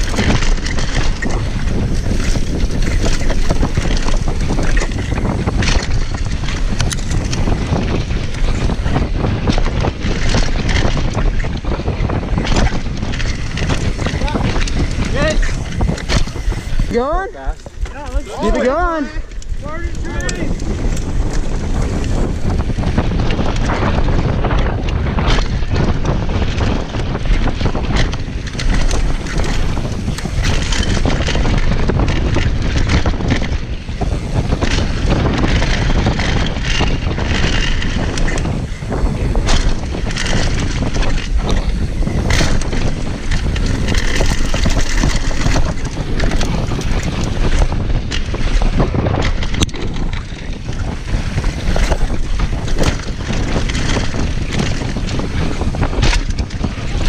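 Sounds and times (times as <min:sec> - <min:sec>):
bike knocks and rattles: 0:00.0 - 0:57.0
bike tyres rolling over gravel: 0:00.0 - 0:57.0
wind buffeting microphone: 0:00.0 - 0:57.0.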